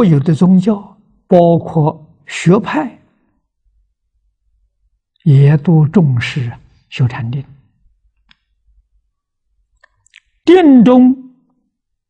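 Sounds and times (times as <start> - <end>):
elderly man lecturing: 0.0 - 3.2, 5.2 - 7.7.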